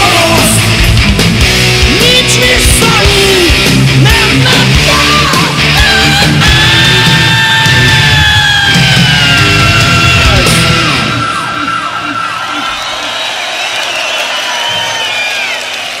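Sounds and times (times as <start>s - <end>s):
heavy metal band playing: 0.0s - 13.2s
crowd cheering and yelling: 0.0s - 16.0s
crowd whistling: 6.6s - 16.0s.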